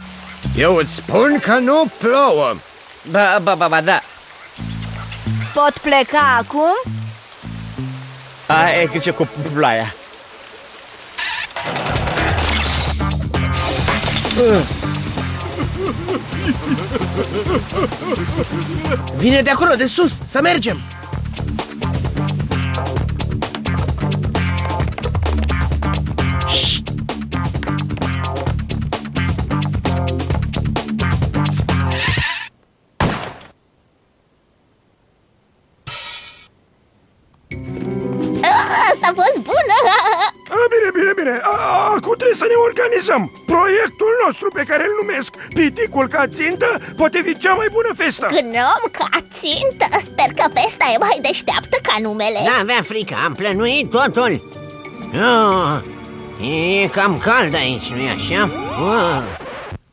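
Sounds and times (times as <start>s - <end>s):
comic background music: 7.8s - 10.0s, 11.6s - 32.2s, 37.5s - 59.4s
cartoon music: 8.5s - 10.0s, 13.7s - 20.8s, 38.4s - 40.4s
thud: 33.0s - 33.6s
noisy cartoon sound effect: 57.6s - 59.6s.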